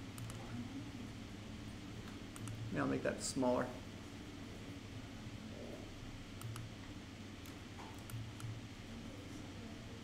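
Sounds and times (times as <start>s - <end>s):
low room hum: 0.0s - 10.0s
mouse and keyboard clicks: 0.2s - 0.4s, 2.3s - 2.6s, 6.4s - 6.7s, 7.4s - 8.6s.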